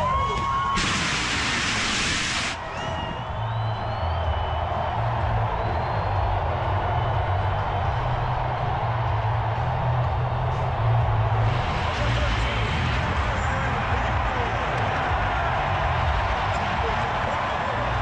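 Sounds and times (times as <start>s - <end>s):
stadium crowd noise: 0.0s - 18.0s
loud hiss: 0.7s - 2.6s
music over public address: 2.2s - 18.0s.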